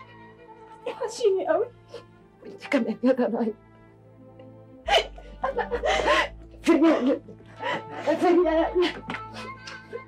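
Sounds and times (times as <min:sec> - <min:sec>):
soft background music: 0:00.0 - 0:10.0
woman sobbing: 0:04.8 - 0:10.0.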